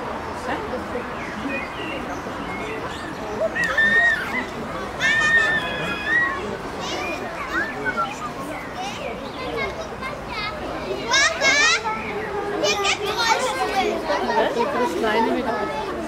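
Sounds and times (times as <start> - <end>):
children talking and calling: 0.0 - 16.0
child's high squeal: 3.6 - 4.4, 5.0 - 8.0.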